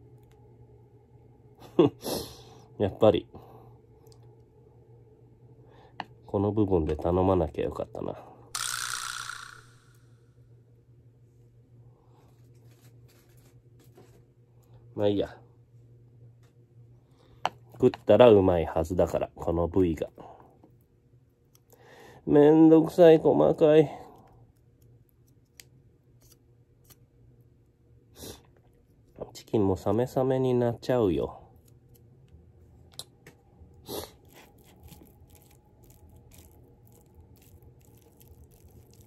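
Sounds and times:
faint low hum: 0.0s - 8.6s.

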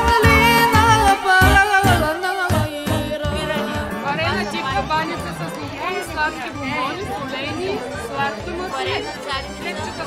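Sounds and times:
background music with a beat: 0.0s - 5.2s
voices chattering: 2.7s - 10.0s.

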